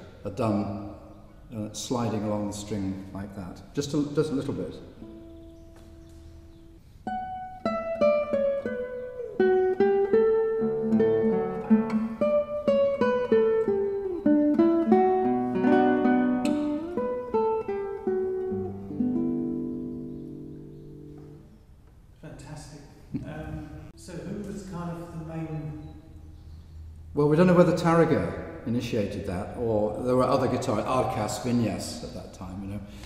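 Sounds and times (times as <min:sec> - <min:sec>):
classical guitar solo: 0:04.6 - 0:21.4.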